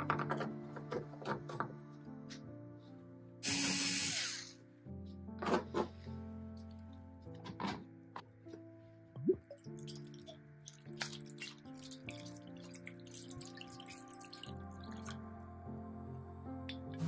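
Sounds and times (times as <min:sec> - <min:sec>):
background music with held notes: 0:00.0 - 0:17.0
liquid splashing and trickling: 0:09.2 - 0:15.3.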